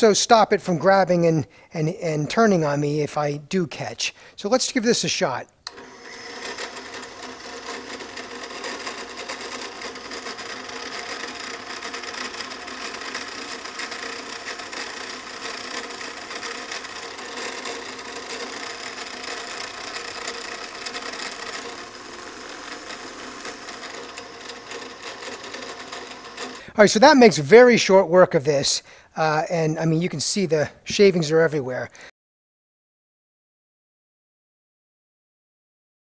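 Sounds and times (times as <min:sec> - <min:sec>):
drill press cutting: 0:05.7 - 0:26.8.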